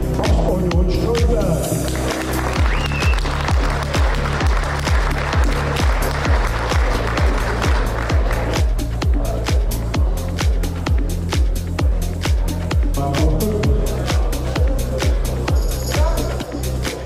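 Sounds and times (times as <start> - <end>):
dance music with kick drum: 0.0 - 17.0.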